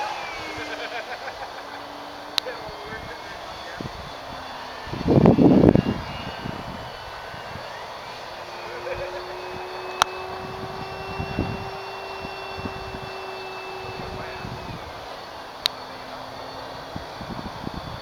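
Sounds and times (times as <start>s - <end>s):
loud low rumble: 0.0s - 17.8s
model plane motor whine: 0.0s - 18.0s.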